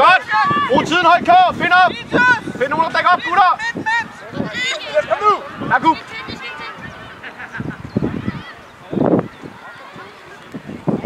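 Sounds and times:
young players shouting: 0.0 - 10.5.

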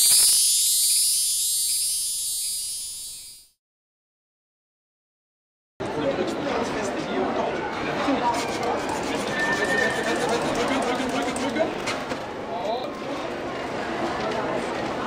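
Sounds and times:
balloon being twisted: 0.0 - 3.4
hand pump inflating balloon: 0.0 - 3.4
people chattering: 5.8 - 11.8, 12.5 - 15.0.

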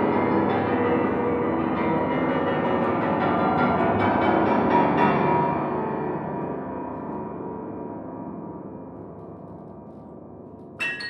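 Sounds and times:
grand piano dense notes: 0.0 - 11.0.

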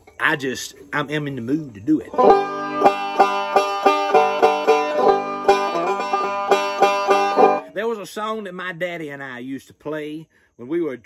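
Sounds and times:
banjo plucked notes: 2.1 - 7.7.

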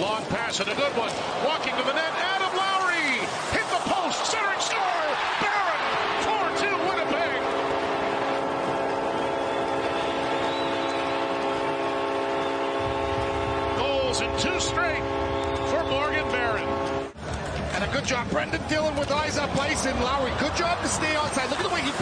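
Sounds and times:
crowd cheering: 0.0 - 22.0
arena goal horn blast: 1.6 - 17.2.

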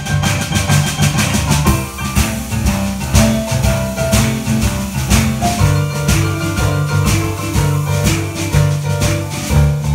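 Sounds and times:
boogie-woogie piano: 0.0 - 9.9
drum kit beat: 0.0 - 9.9
low bass figure: 0.0 - 9.9.

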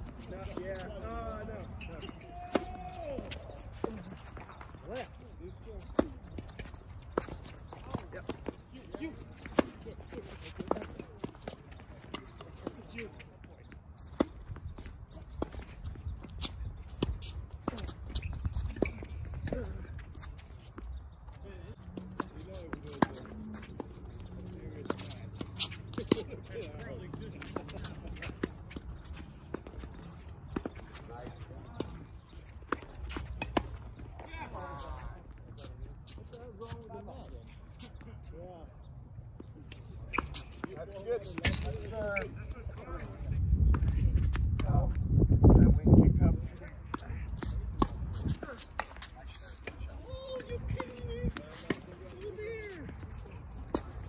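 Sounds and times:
voices talking: 0.0 - 54.0.

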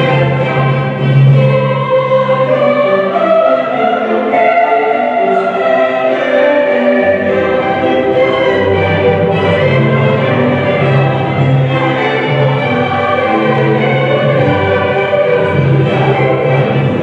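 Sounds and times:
mixed choir singing chords: 0.0 - 17.0.

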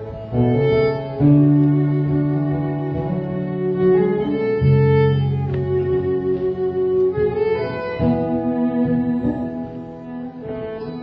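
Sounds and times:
fiddle bowed notes: 0.0 - 11.0.

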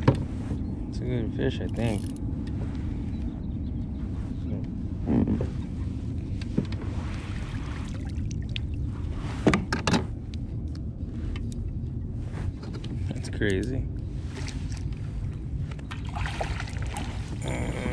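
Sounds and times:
low background rumble: 0.0 - 17.9
fish splashing at water surface: 16.0 - 17.3.

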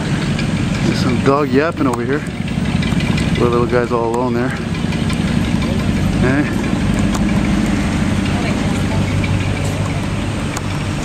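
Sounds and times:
loud car exhaust drone: 0.0 - 11.0.

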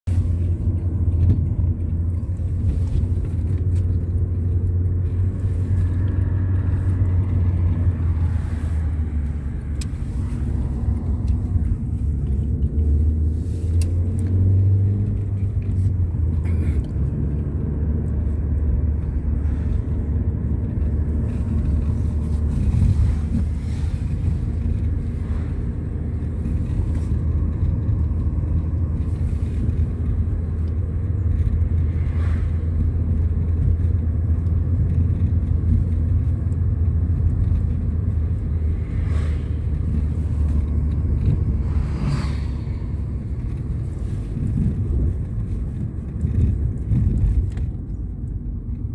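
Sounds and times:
car engine and tyre noise: 0.0 - 48.9.

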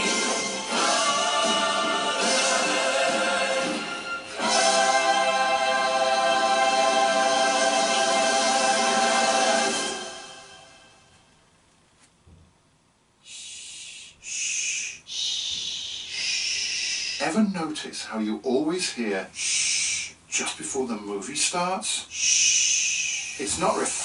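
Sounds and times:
choral singing through tv speaker: 0.0 - 11.0
short hisses: 13.3 - 17.2, 22.1 - 23.5.

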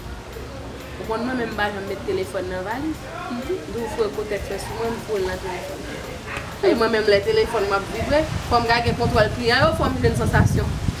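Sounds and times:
woman talking: 1.0 - 6.0, 6.6 - 10.8.

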